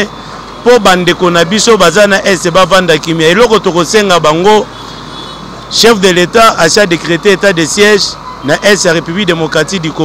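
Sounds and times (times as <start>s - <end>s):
man speaking loudly: 0.0s - 4.7s, 5.7s - 10.0s
street traffic hum: 0.0s - 10.0s.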